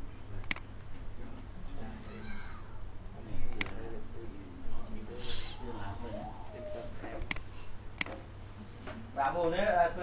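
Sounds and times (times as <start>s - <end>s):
low hum: 3.6s - 8.1s.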